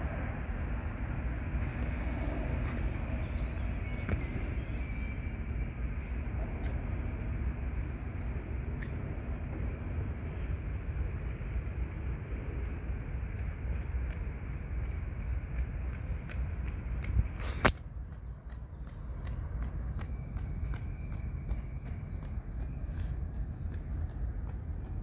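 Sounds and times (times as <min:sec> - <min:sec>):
vehicle road rumble: 0:00.0 - 0:25.0.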